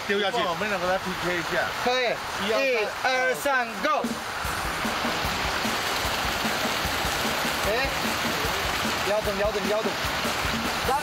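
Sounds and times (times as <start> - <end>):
water pouring from pipe: 0.0 - 11.0
background music with beat: 3.8 - 11.0.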